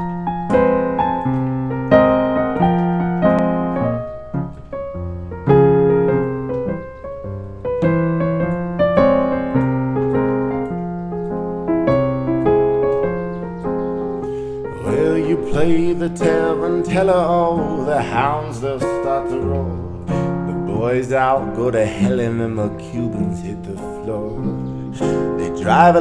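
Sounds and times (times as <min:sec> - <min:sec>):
solo piano chords: 0:00.0 - 0:26.0.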